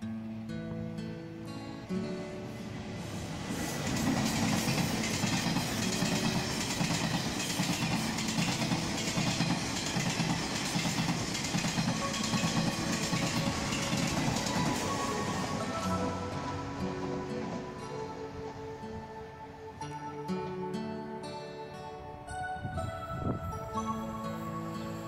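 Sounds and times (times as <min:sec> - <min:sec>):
train wheels clattering over rail joints: 0:03.5 - 0:15.6.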